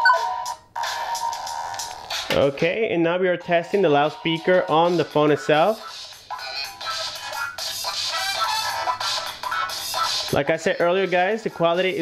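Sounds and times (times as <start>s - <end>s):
ringtone music from phone speaker: 0.0s - 1.7s.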